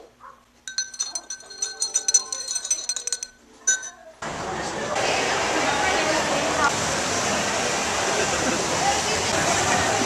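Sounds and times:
spoon clinking against glass: 0.7 - 4.0.

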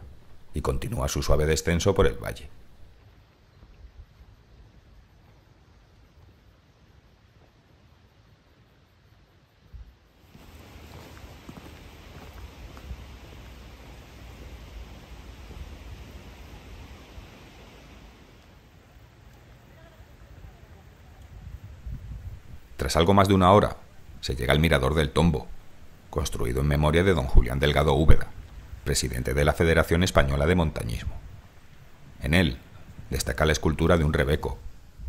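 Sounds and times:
outdoor ambient hiss: 0.0 - 35.0
footsteps on gravel: 10.3 - 15.9.

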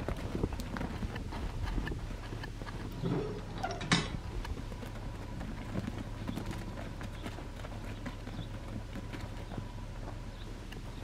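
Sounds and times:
low background hum: 0.0 - 11.0
sheep hooves on dry dirt: 0.0 - 11.0.

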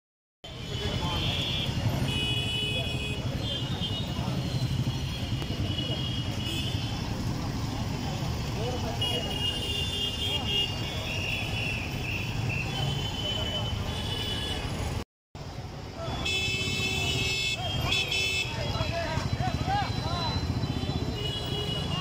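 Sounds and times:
cars and motorcycles passing: 0.5 - 22.0.

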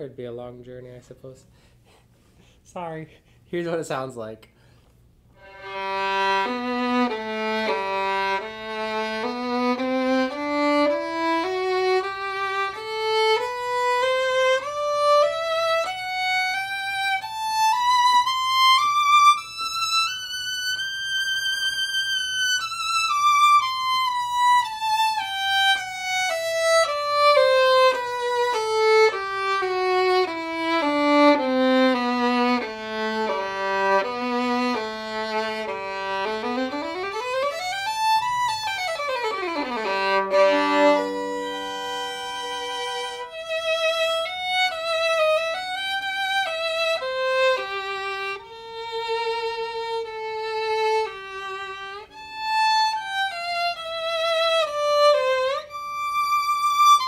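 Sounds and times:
solo violin bowed: 5.3 - 57.0.

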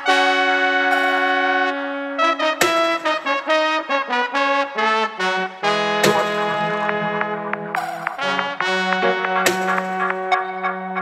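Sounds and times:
horn section in dub track: 0.0 - 11.0.

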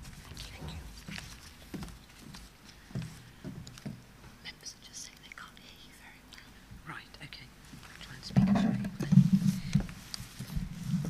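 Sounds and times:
people whispering: 0.3 - 1.2, 4.4 - 9.9.

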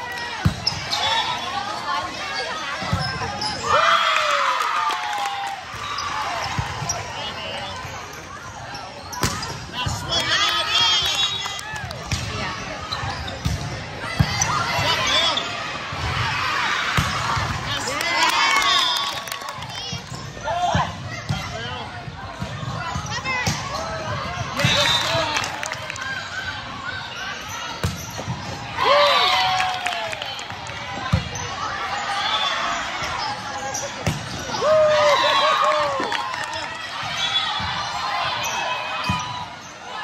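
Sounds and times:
sneakers squeaking on court: 2.8 - 3.6, 5.8 - 9.6, 27.1 - 28.6.

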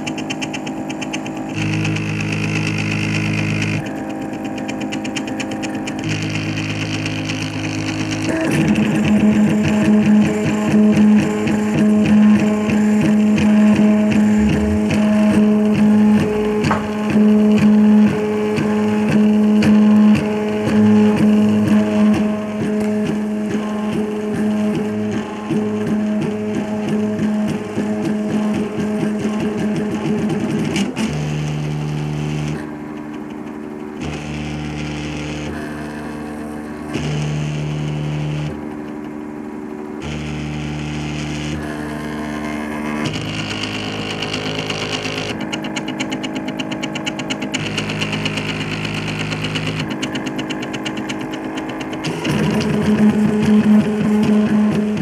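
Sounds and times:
printer stepper motors whining: 0.0 - 55.0.

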